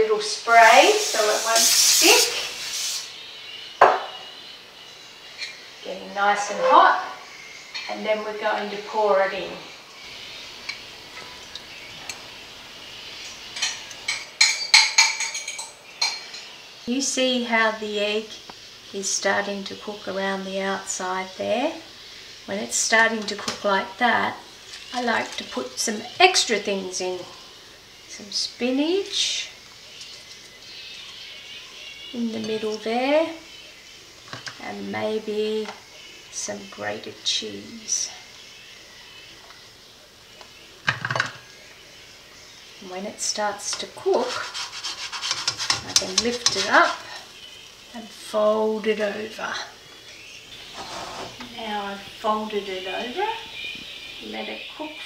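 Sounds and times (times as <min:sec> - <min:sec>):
egg sizzling in a frying pan: 0:00.2 - 0:04.3, 0:09.9 - 0:37.4, 0:38.2 - 0:48.4.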